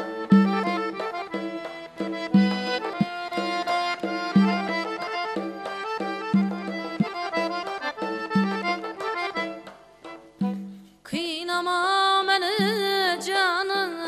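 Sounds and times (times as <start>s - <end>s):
button accordion melody: 0.0s - 11.0s.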